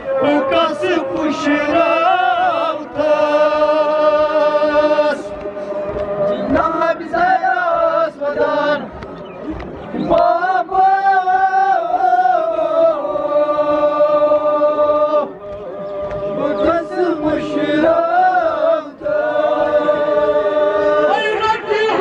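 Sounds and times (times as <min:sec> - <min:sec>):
men chanting into microphones: 0:00.0 - 0:09.0, 0:10.0 - 0:22.0.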